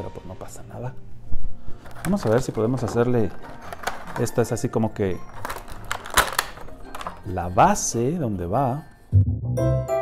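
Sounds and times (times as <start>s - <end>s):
plastic pieces clicking and knocking: 1.8s - 7.5s.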